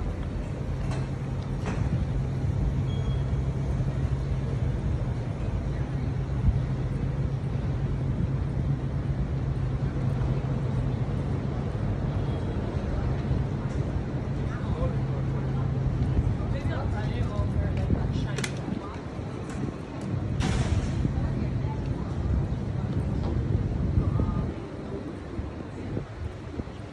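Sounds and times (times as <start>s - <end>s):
low mechanical hum: 0.0s - 26.9s.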